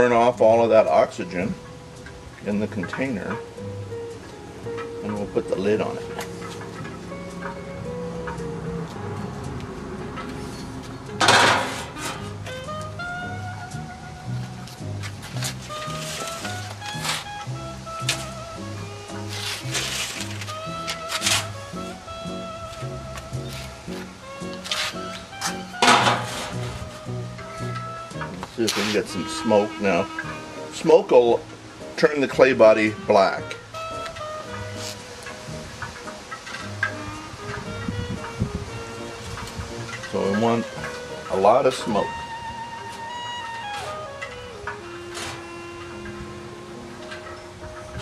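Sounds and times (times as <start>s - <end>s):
instrumental background music: 0.0s - 48.0s.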